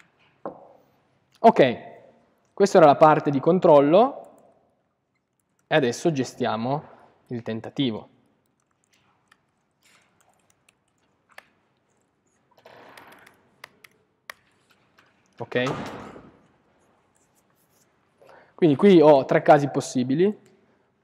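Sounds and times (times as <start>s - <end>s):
keyboard typing: 4.2s - 5.8s, 8.4s - 15.4s.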